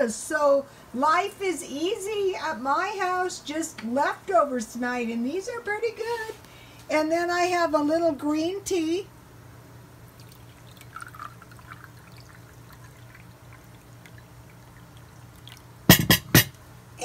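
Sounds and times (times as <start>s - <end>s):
tea trickling into a china cup: 10.2s - 16.2s.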